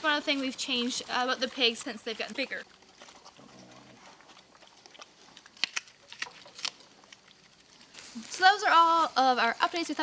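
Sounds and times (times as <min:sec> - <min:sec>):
pig crunching apples: 0:00.0 - 0:09.0
pig grunting: 0:03.1 - 0:05.2.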